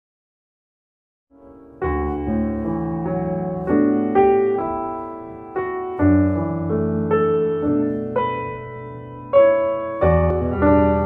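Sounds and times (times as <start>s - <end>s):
soft piano music: 1.3s - 11.0s.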